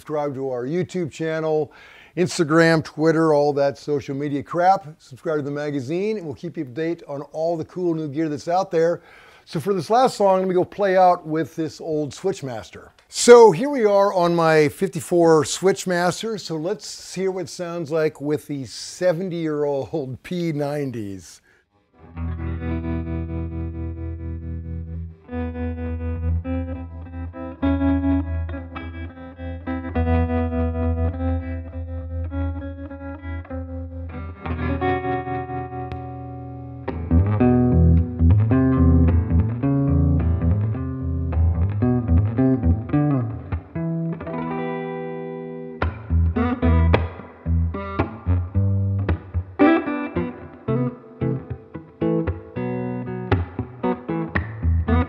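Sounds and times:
electric guitar playing: 0:21.9 - 0:55.0.

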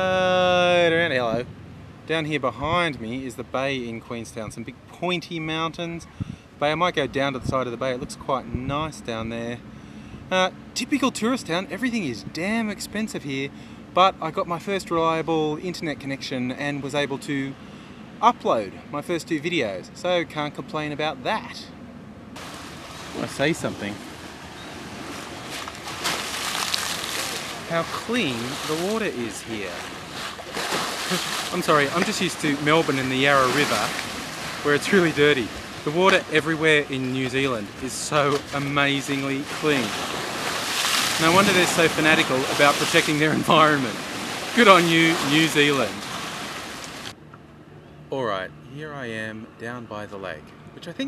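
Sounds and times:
wind: 0:00.0 - 0:51.0
faint splashes: 0:22.4 - 0:47.1
small waves lapping on shore: 0:22.4 - 0:47.2
lapping water: 0:25.6 - 0:36.3.

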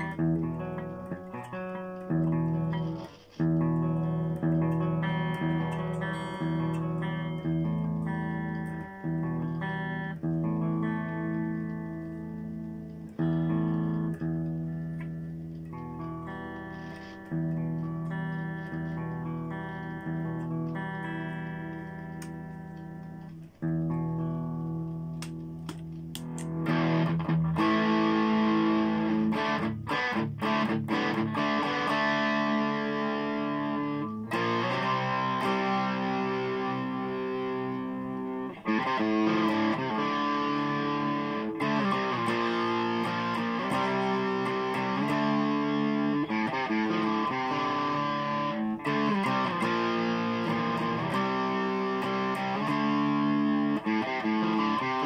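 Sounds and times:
distorted electric guitar: 0:00.0 - 0:55.0.

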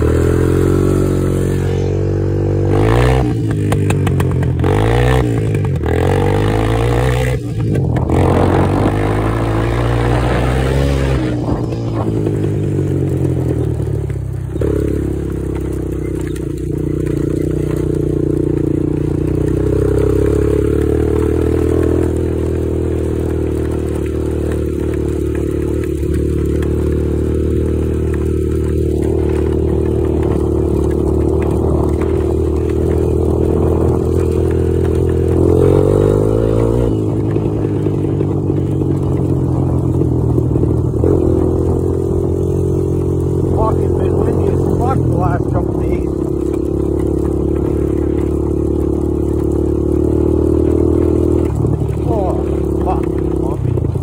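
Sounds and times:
quad engine running: 0:00.0 - 0:54.0.

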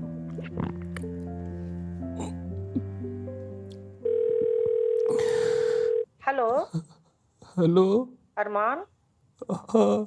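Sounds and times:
telephone ringback tone: 0:04.0 - 0:06.1.

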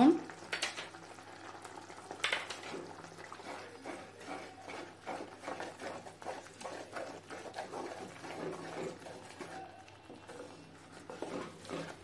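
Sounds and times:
wooden spoon scraping clay pot: 0:02.4 - 0:12.0.

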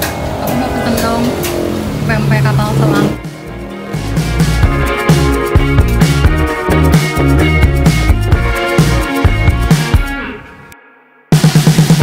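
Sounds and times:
motor vehicle running: 0:00.0 - 0:04.6.

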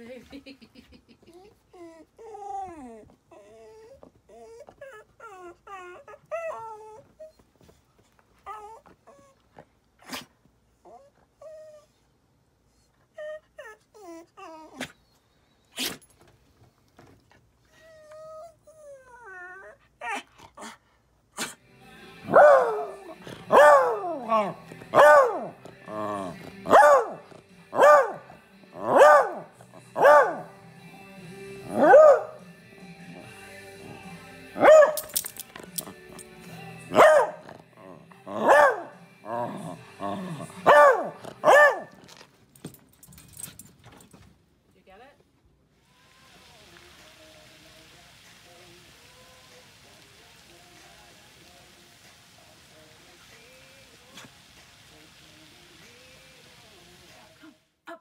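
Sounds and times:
dog whining: 0:01.3 - 0:07.8, 0:08.4 - 0:12.0, 0:12.8 - 0:15.2, 0:17.6 - 0:20.5
dog barking: 0:22.3 - 0:25.5, 0:26.7 - 0:30.5, 0:31.8 - 0:32.4, 0:34.6 - 0:35.1, 0:36.9 - 0:37.5, 0:38.4 - 0:39.0, 0:40.6 - 0:42.0
faint steady hiss: 0:38.2 - 0:58.0.

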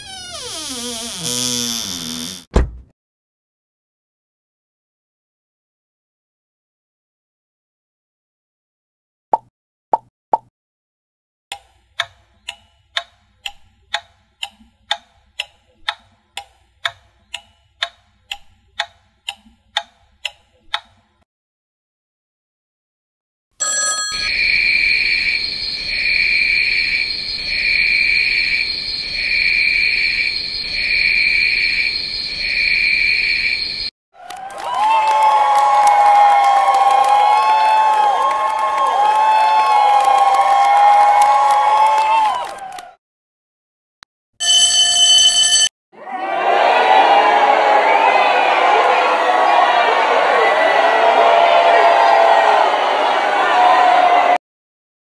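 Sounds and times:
clock ticking: 0:11.5 - 0:21.0
bell ringing continuously: 0:23.6 - 0:24.4, 0:44.4 - 0:45.7
pulsing alarm tone: 0:24.1 - 0:33.9.

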